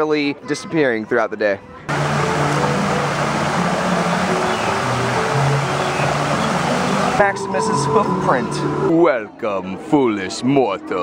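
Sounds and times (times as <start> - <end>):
soft background music: 0.0 - 11.0
waterfall rushing over rocks: 1.9 - 8.0.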